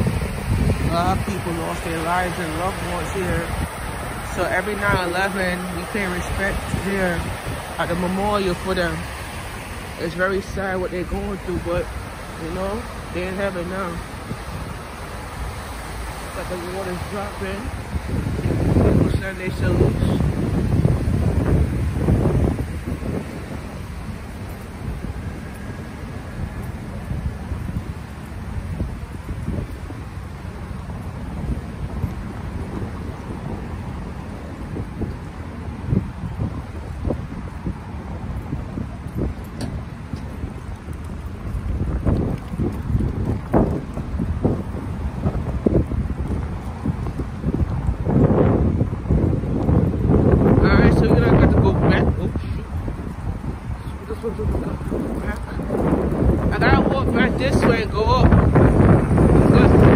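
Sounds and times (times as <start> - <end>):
water rushing into a pool: 0.0 - 32.0
wind buffeting microphone: 0.0 - 59.9.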